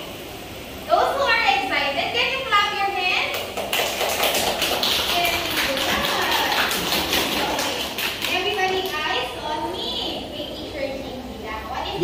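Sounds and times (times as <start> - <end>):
people clapping hands: 3.3 - 9.2.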